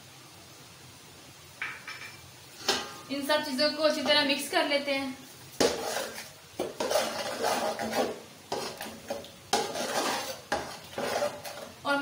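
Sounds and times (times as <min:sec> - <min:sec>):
metal spoon scraping a pot: 0:05.6 - 0:11.8.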